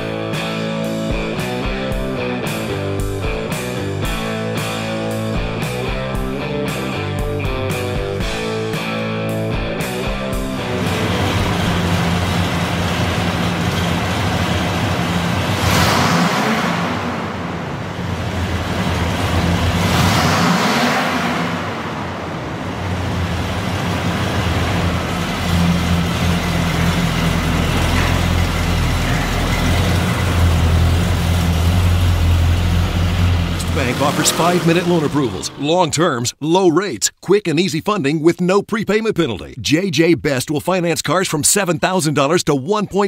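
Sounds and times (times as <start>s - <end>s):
pickup truck engine revving: 0.0s - 36.0s.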